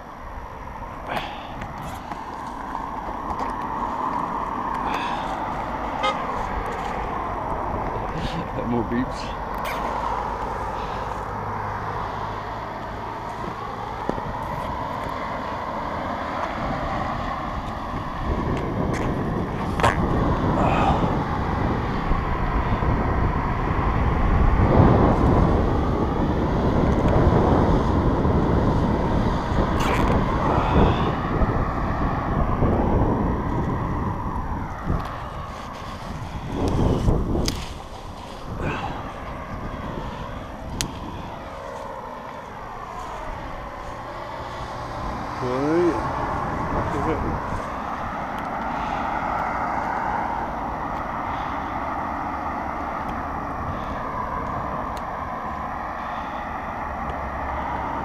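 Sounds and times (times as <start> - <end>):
road traffic passing: 0.0 - 58.0.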